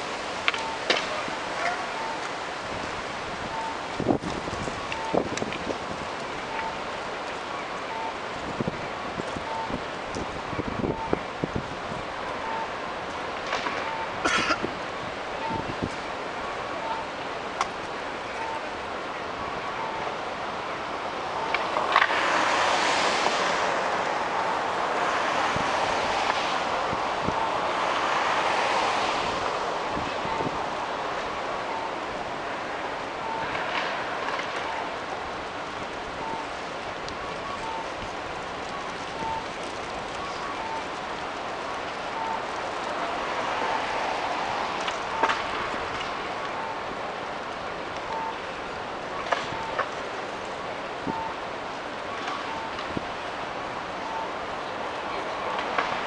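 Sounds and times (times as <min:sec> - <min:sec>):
steady traffic hum: 0:00.0 - 0:56.0
vehicles passing: 0:00.0 - 0:56.0
faint short electronic beep: 0:13.8 - 0:14.1, 0:18.3 - 0:18.6.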